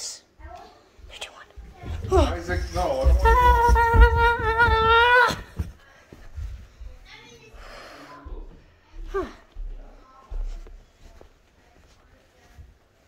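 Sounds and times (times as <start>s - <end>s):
footsteps on carpeted stairs: 0.4s - 13.0s
breathing: 5.8s - 9.6s.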